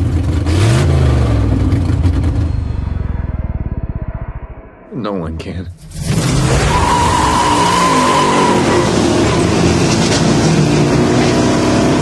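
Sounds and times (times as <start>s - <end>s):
car engine revving: 5.8s - 12.0s.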